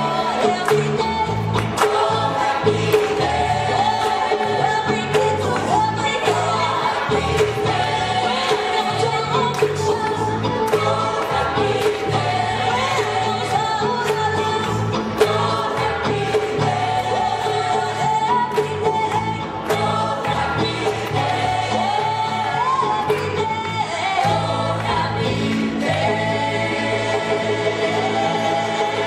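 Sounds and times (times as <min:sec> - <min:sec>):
percussion hits: 0:00.0 - 0:27.2
gospel choir singing: 0:00.0 - 0:29.0
walking bass line: 0:00.0 - 0:29.0.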